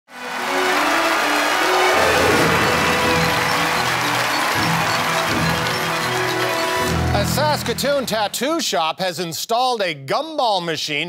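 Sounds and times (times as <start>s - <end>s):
audience applause and cheering: 0.1s - 8.6s
television theme music: 0.1s - 8.8s.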